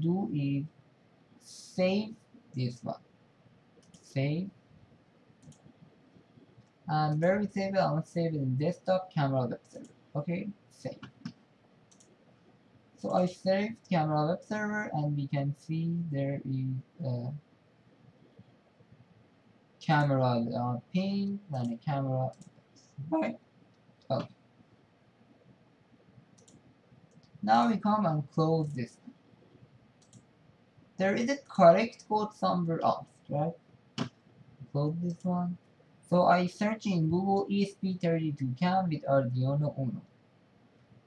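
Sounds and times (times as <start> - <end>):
faint computer mouse clicks: 3.8 - 4.1, 5.4 - 5.8, 10.9 - 12.6, 25.4 - 27.4, 28.6 - 30.3.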